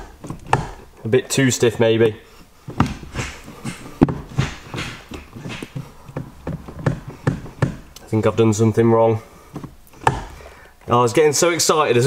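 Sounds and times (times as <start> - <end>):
gear lever clicks and clunks: 0.0 - 0.9.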